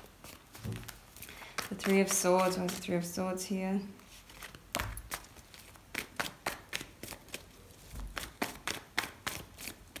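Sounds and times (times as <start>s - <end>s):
cards being shuffled: 0.0s - 3.1s, 4.0s - 10.0s.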